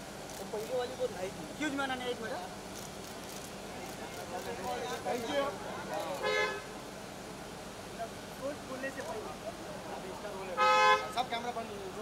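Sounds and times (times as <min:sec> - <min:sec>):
crowd chatter: 0:00.0 - 0:12.0
vehicle horn honking: 0:06.2 - 0:06.7, 0:10.6 - 0:11.2.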